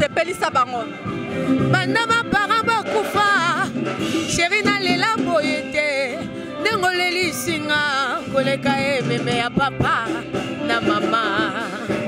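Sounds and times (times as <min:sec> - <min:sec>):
woman singing with vibrato: 0:01.5 - 0:12.0.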